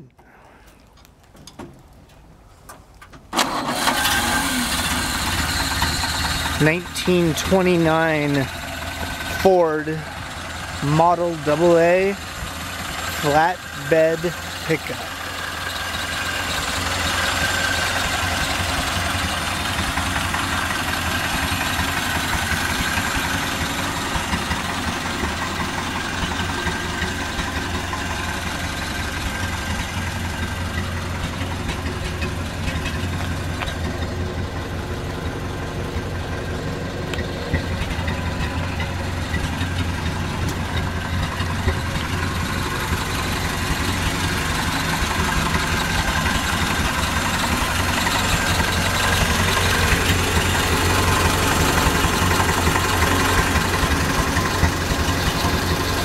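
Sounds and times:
truck engine idling: 3.3s - 56.0s.

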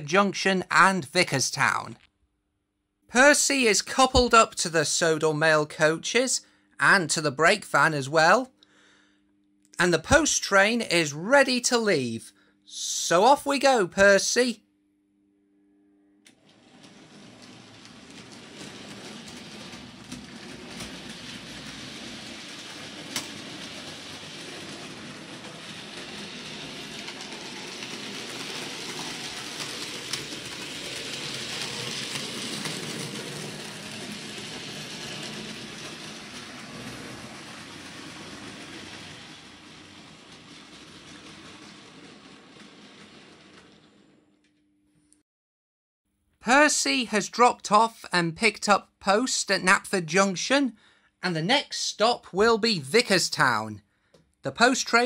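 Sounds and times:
model train running on track: 17.2s - 43.8s.

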